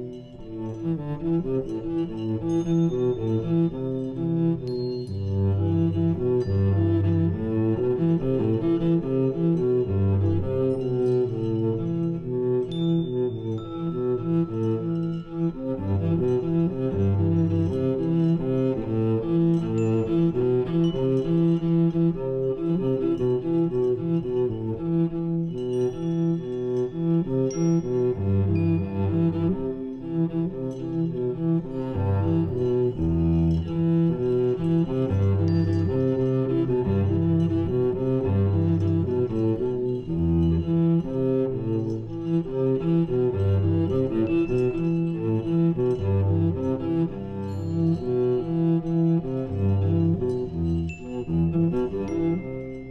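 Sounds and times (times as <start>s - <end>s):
cello playing bowed notes: 0.0s - 52.9s
percussion: 0.0s - 52.9s.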